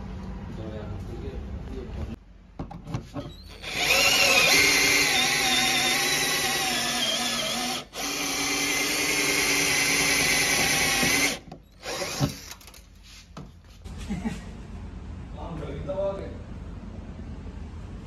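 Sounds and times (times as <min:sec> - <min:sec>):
cordless drill whining: 0:03.3 - 0:12.8.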